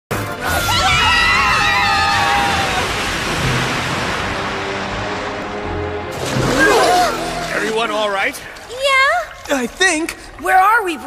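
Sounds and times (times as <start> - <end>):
background music: 0.1 - 11.0
characters screaming: 0.4 - 3.0.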